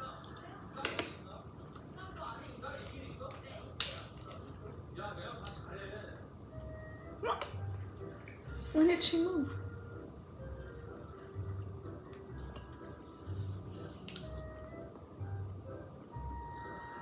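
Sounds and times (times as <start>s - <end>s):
faint television speech: 0.0s - 6.4s, 8.4s - 9.7s.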